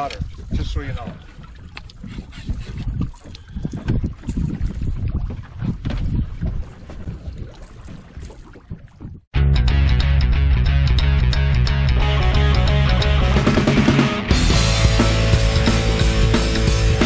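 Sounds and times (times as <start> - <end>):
fish splashing in water: 0.0 - 9.3
wind buffeting microphone: 0.0 - 9.3.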